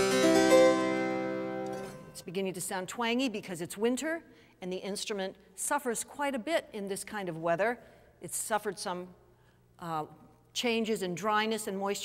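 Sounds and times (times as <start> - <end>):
harpsichord chord ringing: 0.0 - 2.2.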